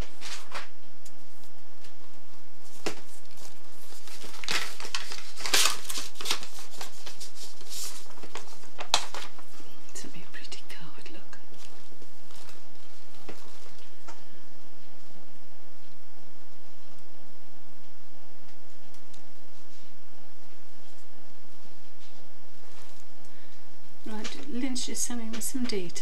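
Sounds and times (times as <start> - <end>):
plastic wrap crinkling: 0.0 - 10.5, 11.1 - 14.3, 22.0 - 24.9.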